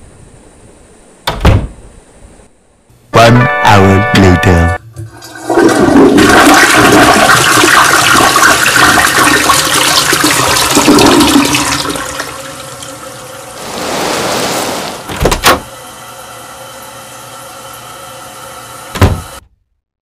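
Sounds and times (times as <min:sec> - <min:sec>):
toilet flushing: 0:04.9 - 0:19.4.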